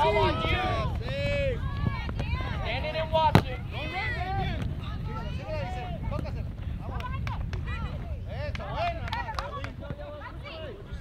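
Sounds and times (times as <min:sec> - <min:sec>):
people shouting and calling: 0:00.0 - 0:06.4
wind rumble on microphone: 0:00.0 - 0:11.0.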